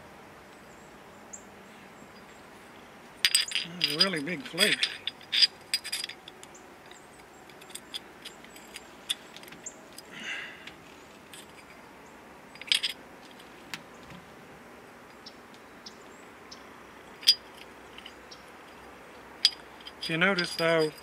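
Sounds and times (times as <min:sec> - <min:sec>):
stone pieces clinking together: 0:03.2 - 0:06.5, 0:12.6 - 0:13.0, 0:17.2 - 0:18.2, 0:19.4 - 0:21.0.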